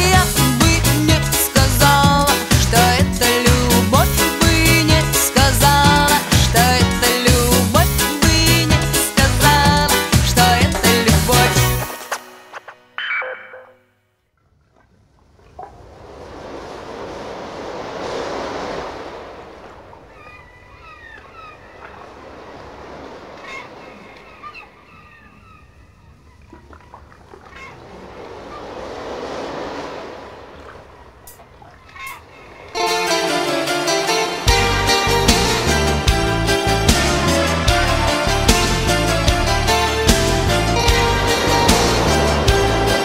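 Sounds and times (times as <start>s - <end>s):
ocean surf washing: 0.0s - 12.4s, 15.3s - 43.0s
music track: 0.0s - 13.8s, 32.8s - 43.0s.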